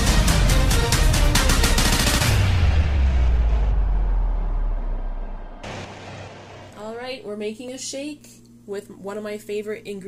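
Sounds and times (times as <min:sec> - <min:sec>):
deep low rumble: 0:02.3 - 0:06.8.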